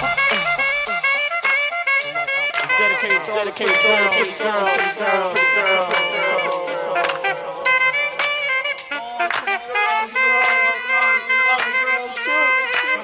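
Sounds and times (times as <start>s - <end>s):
hip hop music with sliding notes: 0.0s - 13.0s.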